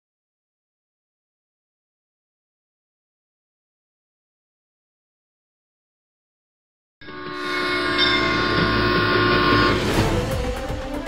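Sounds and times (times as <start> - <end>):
train horn chord: 7.0 - 10.9.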